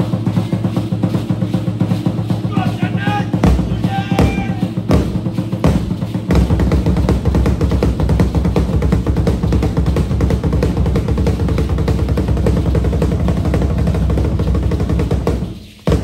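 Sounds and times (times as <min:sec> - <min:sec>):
loud fast drum music: 0:00.0 - 0:16.0.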